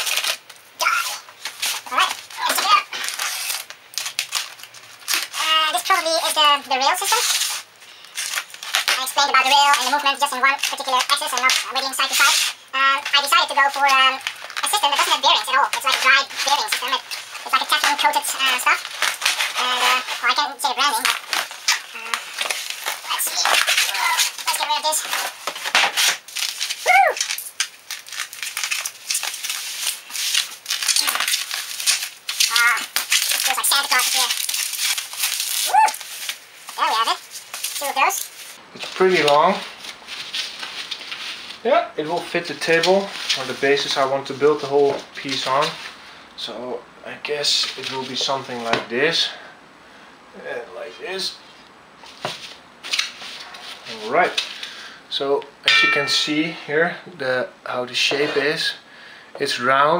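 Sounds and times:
plastic packaging crinkling: 0:00.0 - 0:41.6
bubble wrap rustling: 0:00.0 - 0:46.1, 0:47.4 - 0:48.8, 0:52.0 - 0:54.7.

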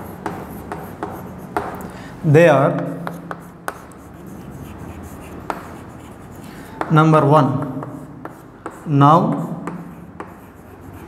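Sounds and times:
chalk scratching on chalkboard: 0:00.0 - 0:01.8, 0:03.0 - 0:11.0
chalk tapping on chalkboard: 0:00.0 - 0:01.9, 0:02.8 - 0:11.0.

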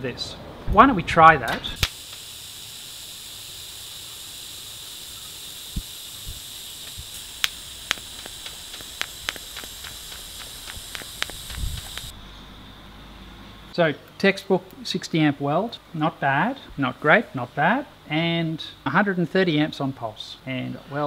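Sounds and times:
welding arc hissing: 0:01.6 - 0:12.2
sharp ticks: 0:01.8 - 0:12.1.

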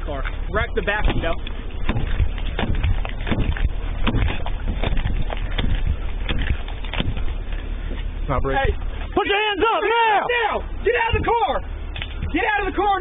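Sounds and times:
steady low rumble: 0:00.0 - 0:13.0
body camera knocks and thumps: 0:00.9 - 0:07.4.

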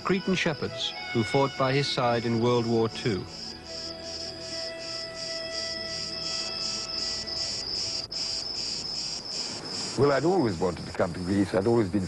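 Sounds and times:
faint sustained music notes: 0:00.0 - 0:11.9
insect chirping: 0:00.0 - 0:12.0.

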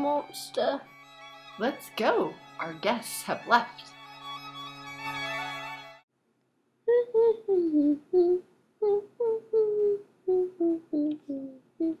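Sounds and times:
person humming a tune: 0:06.9 - 0:12.0.

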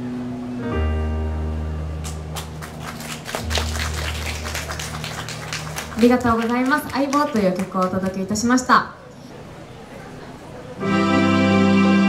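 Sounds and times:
audience clapping: 0:02.0 - 0:08.6.

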